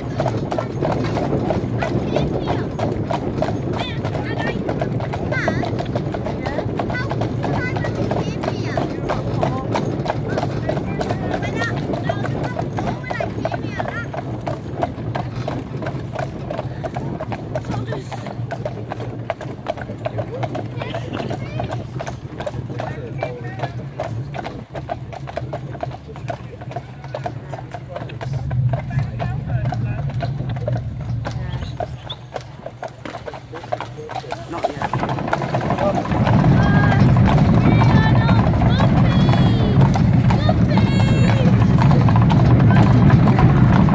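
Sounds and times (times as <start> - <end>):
horse hooves clip-clopping: 0.0 - 43.9.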